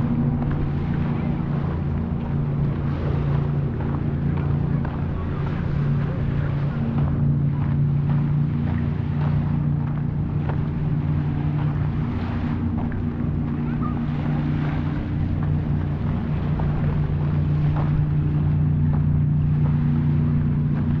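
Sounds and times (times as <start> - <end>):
low engine hum: 0.0 - 21.0
wind on microphone: 0.0 - 21.0
footsteps on gravel: 6.6 - 21.0.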